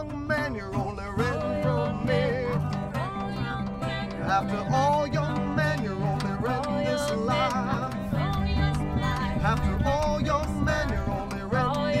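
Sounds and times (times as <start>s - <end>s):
bass line: 0.0s - 12.0s
strummed acoustic guitar: 0.0s - 12.0s.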